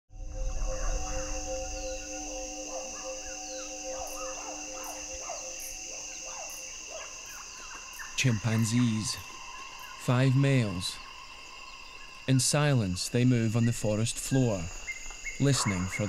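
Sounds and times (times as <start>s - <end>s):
high-pitched insect drone: 0.1s - 16.0s
chirping bird calls: 0.2s - 10.4s, 13.6s - 16.0s.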